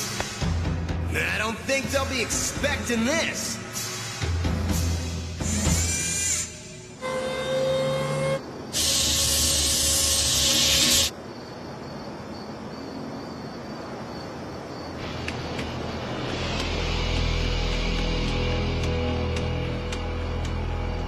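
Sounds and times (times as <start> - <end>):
music: 0.0 - 8.4, 15.0 - 21.0
loud hiss: 2.8 - 7.0, 8.7 - 11.1.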